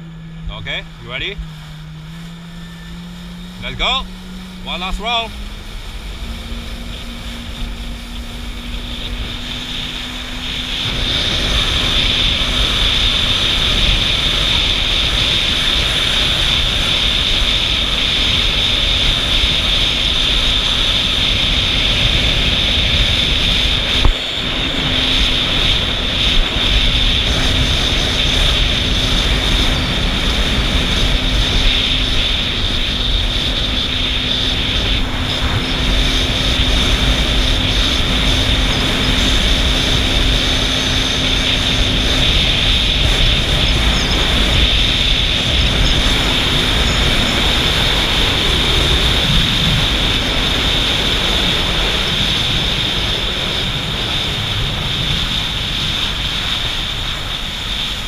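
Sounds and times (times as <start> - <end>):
jet ski engine droning: 0.0 - 58.0.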